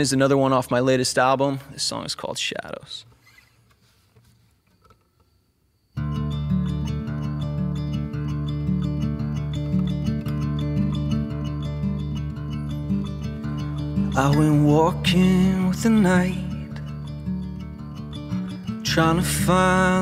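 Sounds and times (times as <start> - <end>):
acoustic guitar picked notes: 5.9 - 20.0.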